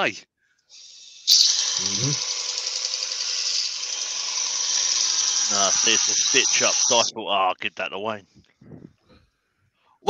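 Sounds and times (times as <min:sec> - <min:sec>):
grinding wheel hiss: 0:00.7 - 0:07.1.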